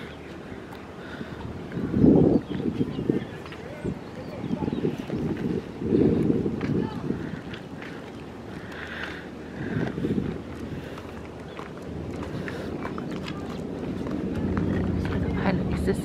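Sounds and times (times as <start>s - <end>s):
wind on microphone: 0.0s - 16.0s
low rumble: 11.9s - 16.0s.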